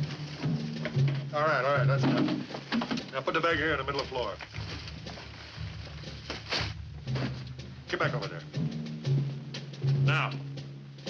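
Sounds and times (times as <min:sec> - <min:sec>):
cloth sack rustle: 0:00.0 - 0:00.8, 0:04.0 - 0:07.5.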